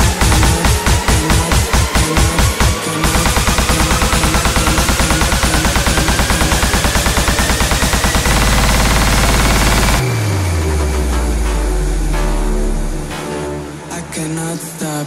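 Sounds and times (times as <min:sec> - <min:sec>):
rising synth sweep: 0:00.0 - 0:14.2
bass note gliding down: 0:10.0 - 0:13.2.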